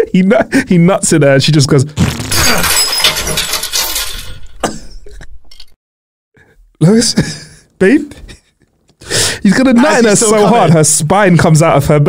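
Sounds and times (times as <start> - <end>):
glass breaking: 2.0 - 4.7.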